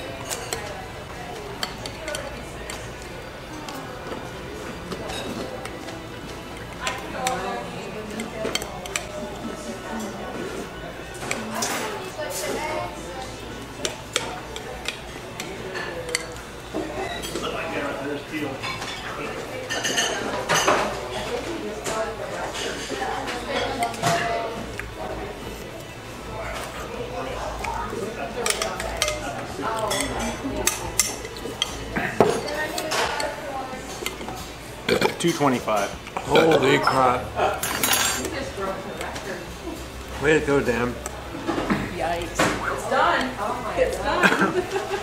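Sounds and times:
faint music: 0.0 - 45.0
faint voices: 0.0 - 45.0
spoons clinking against glass bowls: 28.4 - 33.3, 35.1 - 38.3.

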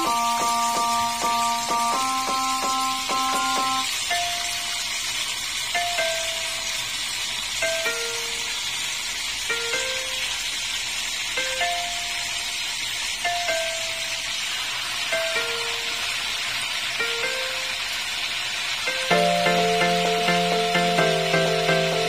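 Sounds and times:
fish sizzling in hot oil: 0.0 - 22.0.

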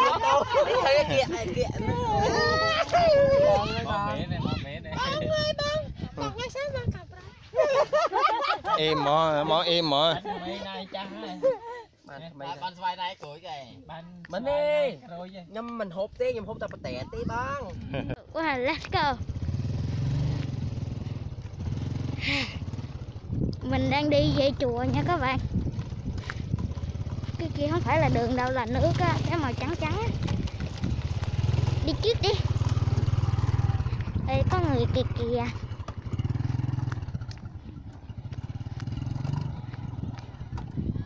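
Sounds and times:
small motorcycle engine: 19.0 - 41.0
clatter over bumps: 23.4 - 40.9.

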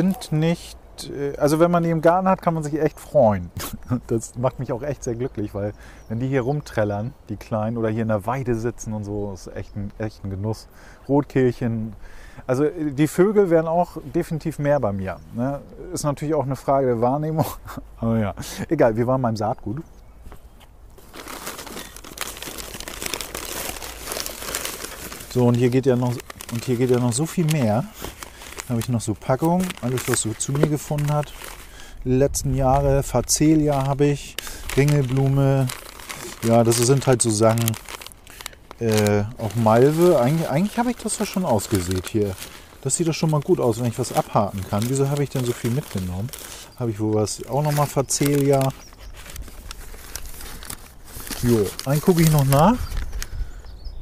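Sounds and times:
paper bags rustling: 21.0 - 53.4.

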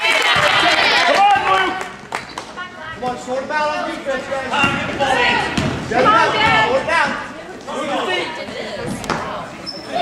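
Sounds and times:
voices chattering and calling out: 0.0 - 10.0.

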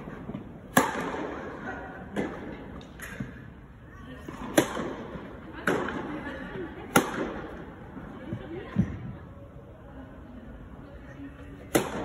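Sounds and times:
tennis racket hitting ball: 0.7 - 1.6, 4.4 - 6.0, 6.9 - 7.5, 11.7 - 12.0.

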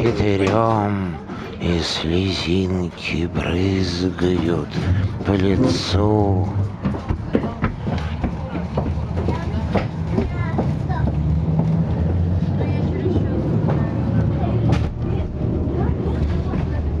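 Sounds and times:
faint voices: 0.0 - 17.0
vehicle low rumble: 0.0 - 17.0.

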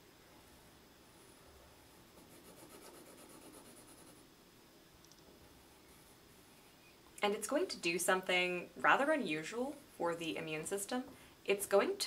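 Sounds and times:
pencil scratching on paper: 2.2 - 4.2.

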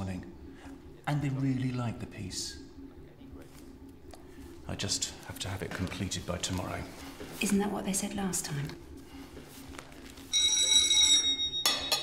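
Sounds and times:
doorbell ringing: 10.3 - 12.0.

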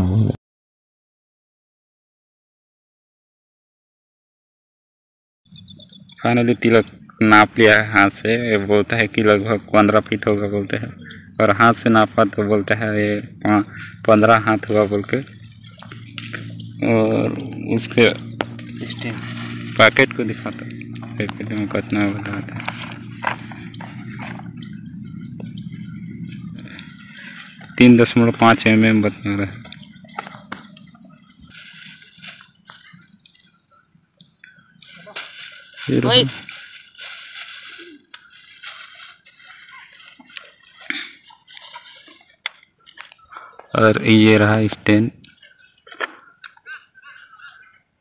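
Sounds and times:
man speaking: 0.0 - 0.4, 6.2 - 15.4, 16.5 - 23.8, 27.7 - 29.7, 35.9 - 36.4, 43.7 - 45.3
steady low hum: 5.5 - 37.4
soft rustling handling noise: 14.2 - 30.8, 31.4 - 33.3, 34.8 - 47.8.

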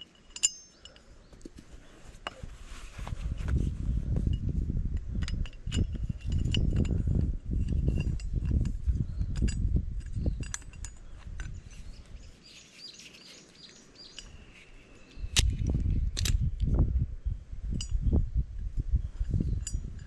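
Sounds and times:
metal pipe and pliers clinking: 0.0 - 2.5, 4.0 - 16.6, 17.7 - 18.1, 19.1 - 20.0
rumbling handling noise: 0.0 - 20.0
faint bird chirps: 10.2 - 15.4.

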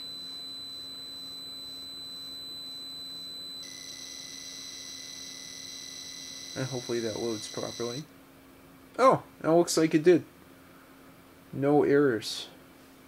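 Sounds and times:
high-pitched buzzer data tone: 0.0 - 8.0.

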